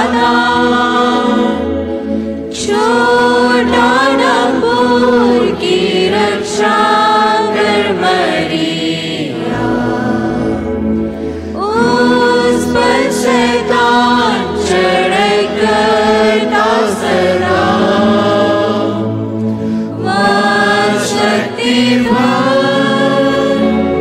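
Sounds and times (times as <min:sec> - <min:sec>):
choir singing a hymn: 0:00.0 - 0:24.0
sustained instrumental backing: 0:00.0 - 0:24.0.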